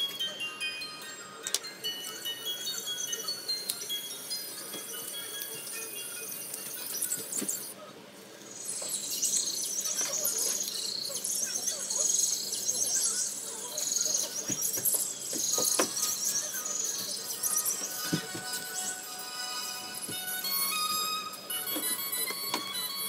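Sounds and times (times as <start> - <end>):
high-pitched chirping trills: 0.0 - 7.8, 8.4 - 23.0
faint background music: 0.0 - 23.0.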